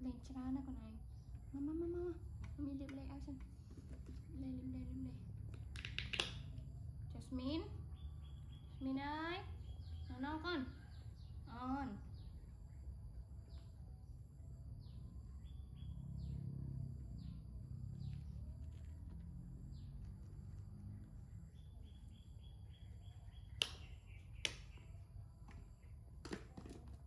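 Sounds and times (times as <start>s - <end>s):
birds chirping: 7.2s - 26.2s
high insect-like whine: 11.2s - 26.1s.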